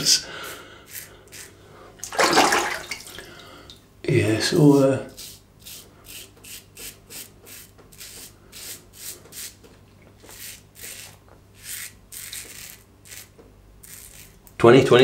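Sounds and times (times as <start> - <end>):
razor scraping stubble: 0.9 - 1.6, 4.5 - 9.6, 10.2 - 14.5.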